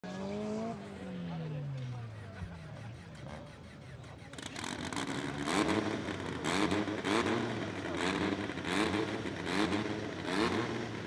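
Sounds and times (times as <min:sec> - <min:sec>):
car engine revving: 0:04.4 - 0:11.0.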